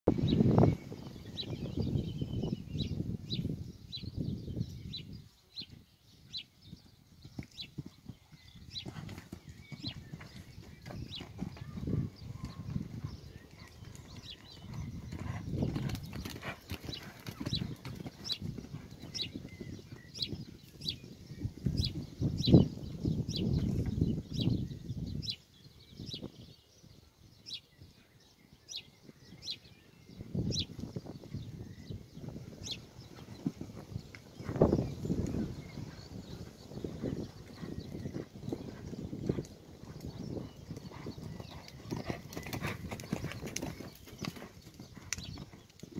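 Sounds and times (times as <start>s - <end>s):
muffled hoofbeats on sand: 6.3s - 21.1s, 32.3s - 45.9s.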